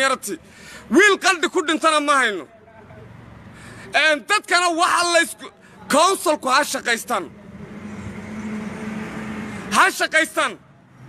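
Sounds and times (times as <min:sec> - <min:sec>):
road noise: 0:00.0 - 0:11.0
motor vehicle running: 0:05.6 - 0:11.0.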